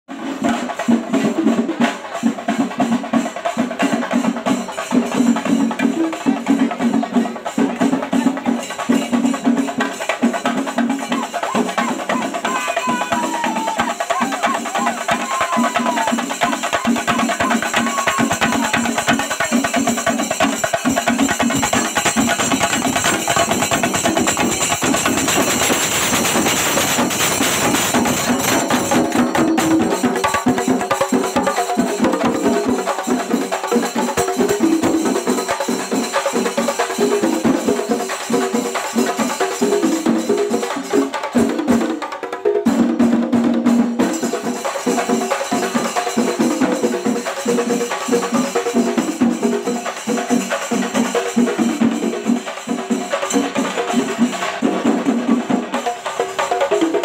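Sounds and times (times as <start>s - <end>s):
drums beaten with sticks: 0.1s - 57.0s.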